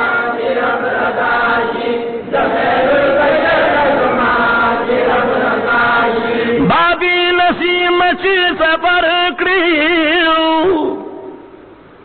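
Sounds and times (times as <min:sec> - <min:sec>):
group of men chanting: 0:00.0 - 0:06.7
man singing ornamented melody: 0:06.0 - 0:11.5.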